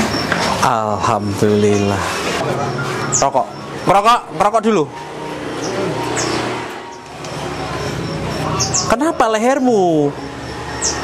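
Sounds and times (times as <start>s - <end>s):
motor vehicle passing: 0.0s - 11.0s.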